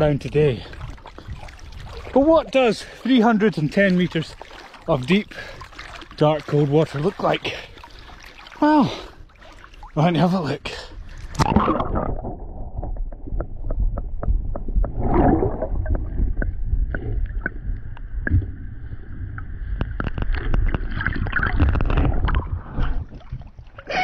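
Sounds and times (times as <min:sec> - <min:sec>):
muffled underwater sloshing: 0:00.0 - 0:24.0
sharp clicks and knocks: 0:12.8 - 0:15.0.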